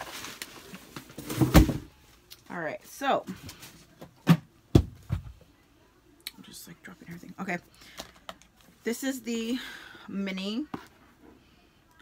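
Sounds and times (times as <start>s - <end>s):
objects thumping in cardboard box: 1.0s - 1.9s.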